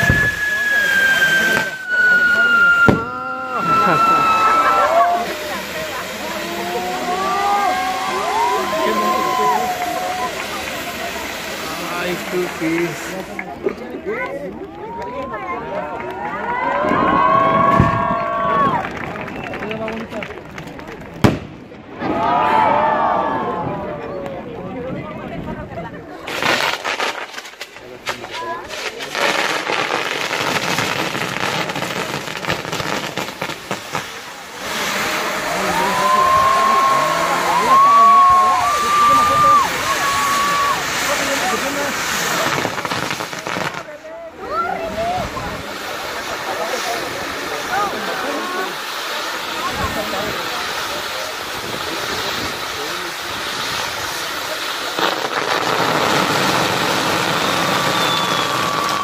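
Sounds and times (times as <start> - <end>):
whistling fireworks: 0.0 - 13.6, 14.8 - 23.4, 26.1 - 59.0
fireworks hissing: 0.0 - 15.7, 21.0 - 22.0, 26.0 - 59.0
crowd voices: 0.0 - 59.0.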